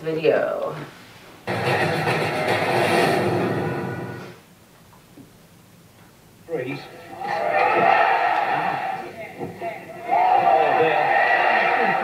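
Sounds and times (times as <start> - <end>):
boxing video audio from computer: 1.4 - 4.4, 7.1 - 12.0.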